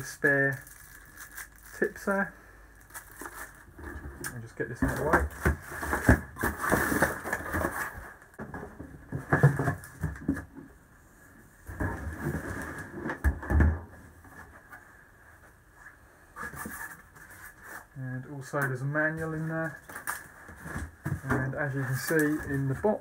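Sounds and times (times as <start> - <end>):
packaging rustling and knocking: 2.9 - 10.6.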